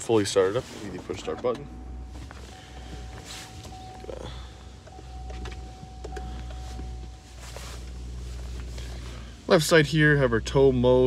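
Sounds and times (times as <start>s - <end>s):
diesel engine idling: 0.0s - 11.0s
thin steady whine: 0.0s - 11.0s.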